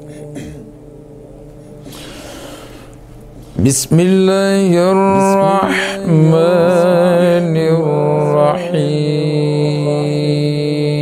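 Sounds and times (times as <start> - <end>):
man reciting melodically: 0.0 - 1.3, 3.4 - 11.0.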